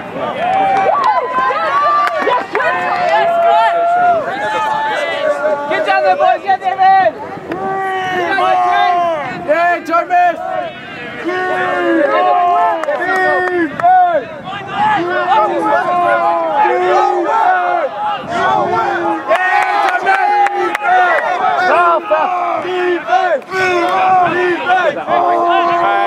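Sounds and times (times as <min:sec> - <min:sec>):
players shouting: 0:00.0 - 0:26.0.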